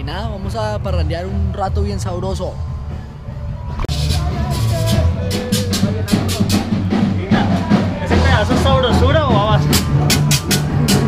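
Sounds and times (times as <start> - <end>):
live rock band playing: 3.8 - 11.0.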